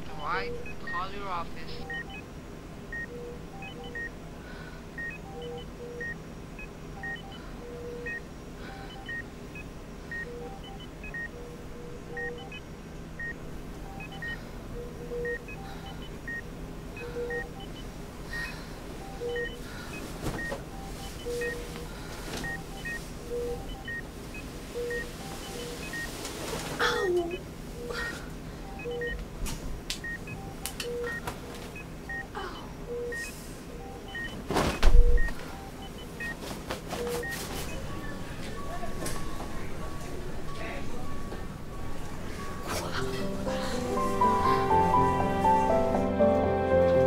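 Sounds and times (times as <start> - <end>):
medical equipment beeping: 0.0 - 2.3, 2.9 - 4.2, 4.9 - 29.3, 30.0 - 44.4
steady low hum: 0.0 - 46.1.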